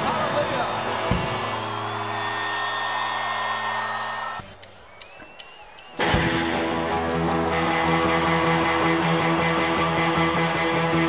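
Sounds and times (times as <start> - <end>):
rock band sustained chord: 6.1 - 11.0.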